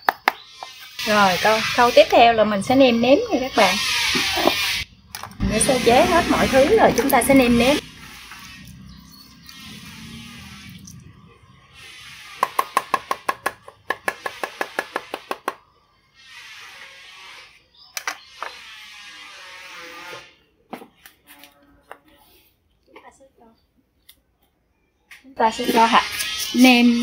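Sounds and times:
blade scraping a board: 4.0s - 4.8s.

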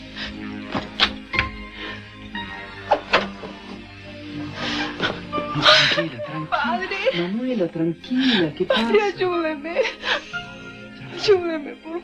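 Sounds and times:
soft dramatic background music: 0.0s - 12.0s.

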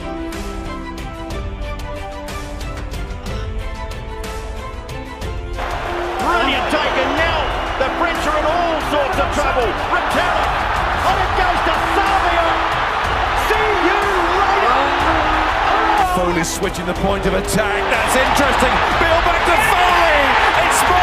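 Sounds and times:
background music: 0.0s - 21.0s
stadium crowd roar: 5.6s - 21.0s
commentator speaking: 6.1s - 12.7s, 13.3s - 21.0s.

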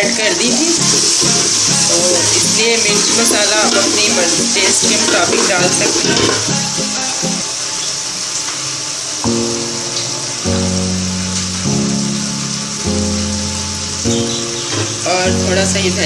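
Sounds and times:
masala frying in oil: 0.0s - 16.0s
background music of held chords: 0.4s - 7.5s, 9.2s - 16.0s.

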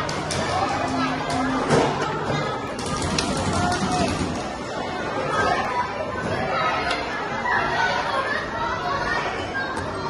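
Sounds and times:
background chatter echoing in hall: 0.0s - 10.0s.

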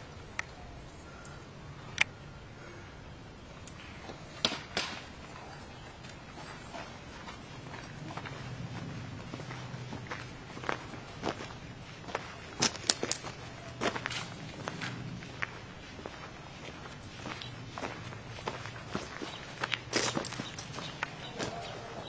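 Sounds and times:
sharp cracks: 3.6s - 5.2s, 12.6s - 14.7s
footsteps on dirt path: 3.9s - 22.0s.

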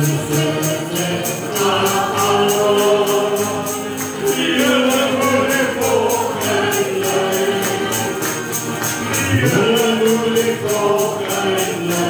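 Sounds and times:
choir singing gospel: 0.0s - 12.0s
high percussion beat: 0.0s - 12.0s.

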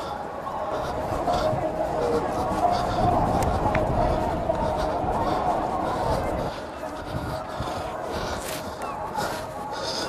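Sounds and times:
indistinct voices: 0.0s - 10.0s
outdoor background noise: 0.0s - 10.0s.

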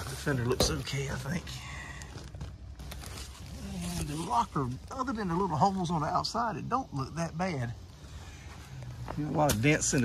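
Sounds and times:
rustling and scraping: 0.0s - 6.1s.

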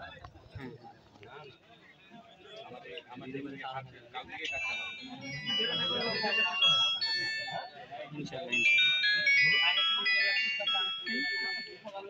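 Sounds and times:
voices talking: 4.2s - 12.0s
electronic beeping tune: 4.5s - 7.8s, 8.5s - 11.8s.

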